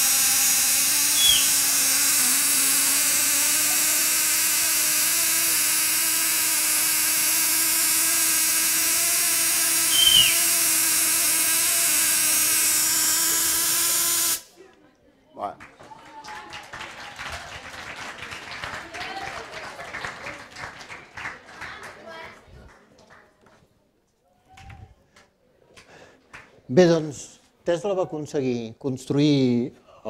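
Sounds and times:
tesla coil sparks buzzing: 0.0 - 14.5.

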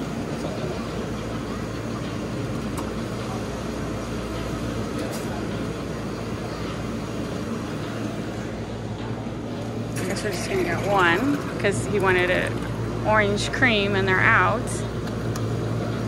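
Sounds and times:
refrigeration machinery hum: 0.0 - 16.0.

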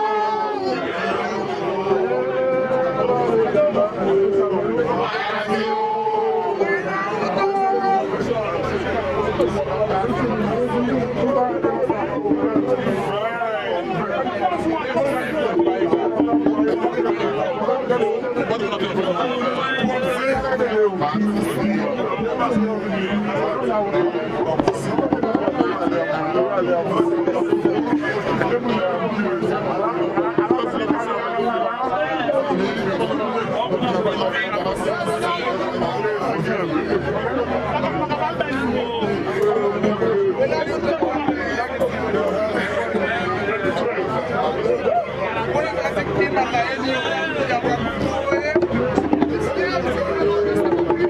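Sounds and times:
voices singing together: 0.0 - 33.7
crowd talking: 0.0 - 51.0
drum strikes: 8.2 - 44.6, 45.4 - 51.0.

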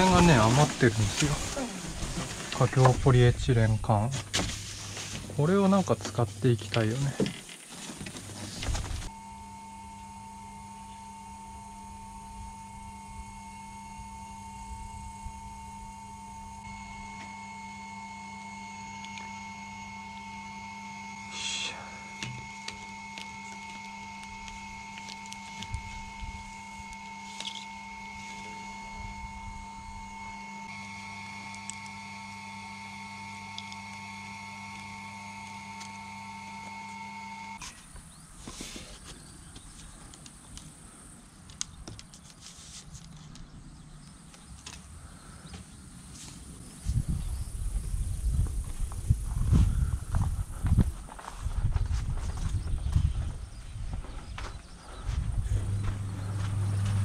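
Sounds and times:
small motor humming: 8.6 - 37.7, 54.9 - 57.0.

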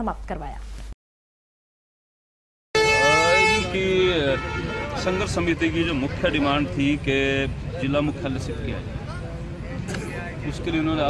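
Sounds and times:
steady held horn-like tone: 2.8 - 5.7
man speaking: 2.8 - 8.9.

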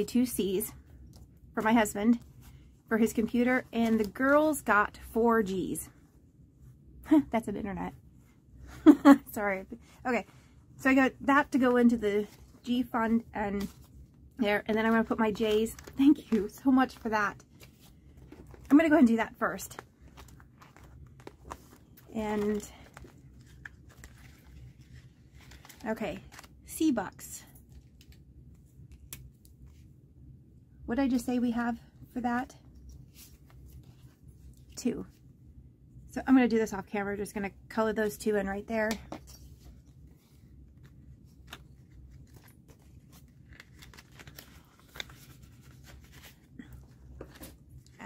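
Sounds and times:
low steady hum: 0.0 - 48.0
paper handling: 14.8 - 26.6, 39.2 - 47.6.

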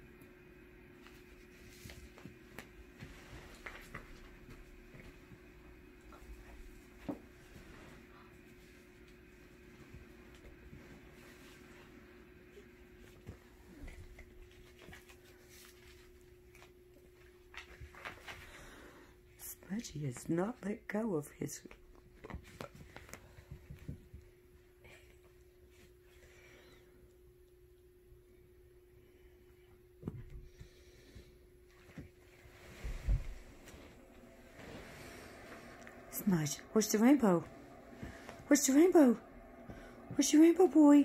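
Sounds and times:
faint steady hum: 0.0 - 41.0.

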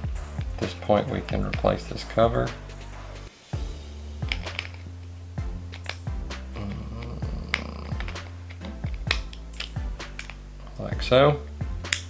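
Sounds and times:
background music: 0.0 - 12.0
fishing reel cover clicks: 4.2 - 4.9, 5.7 - 6.1.

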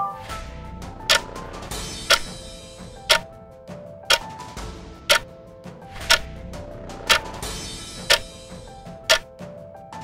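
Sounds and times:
quiet background music: 0.0 - 10.0
clock ticking: 1.1 - 1.3, 2.0 - 2.4, 3.0 - 3.3, 4.1 - 4.3, 5.1 - 5.3, 6.0 - 6.3, 7.0 - 7.4, 8.1 - 8.4, 9.0 - 9.3.

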